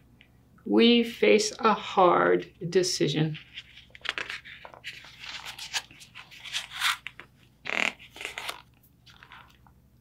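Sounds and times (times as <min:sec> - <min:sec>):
paper pages rustling and crinkling: 0:03.4 - 0:09.7.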